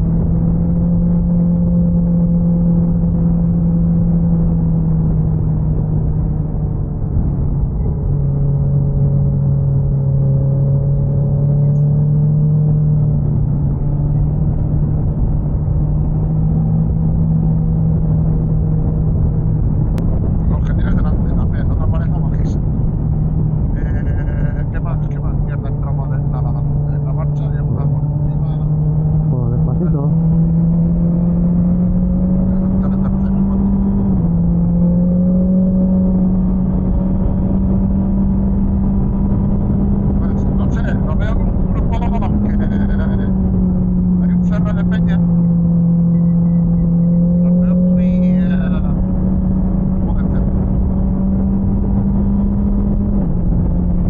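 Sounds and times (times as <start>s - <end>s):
wind rush on microphone: 0.0s - 1.3s, 13.1s - 26.3s, 47.6s - 54.0s
motorcycle engine running: 25.7s - 54.0s.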